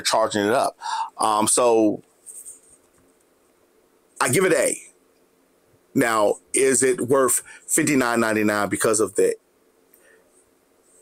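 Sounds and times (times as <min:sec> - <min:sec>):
faint high hiss: 0:00.0 - 0:11.0.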